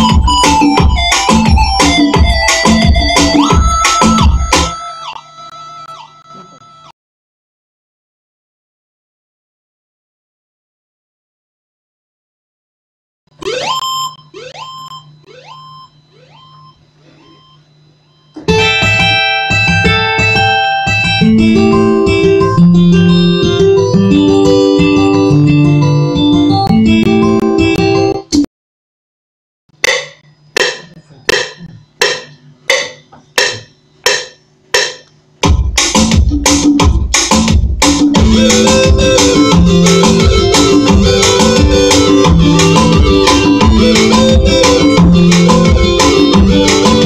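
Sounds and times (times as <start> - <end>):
rumba backing track: 0.0 - 5.2, 34.8 - 47.0
percussion hit from computer speaker: 29.8 - 47.0.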